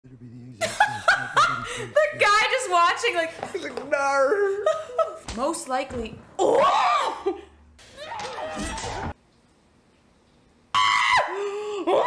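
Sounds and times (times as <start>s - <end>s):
woman laughing: 0.6s - 2.4s, 4.3s - 5.2s, 6.4s - 7.6s.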